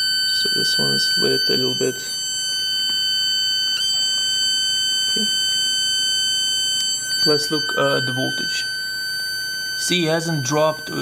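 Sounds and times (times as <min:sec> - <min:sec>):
high-pitched transformer whine: 0:00.0 - 0:11.0.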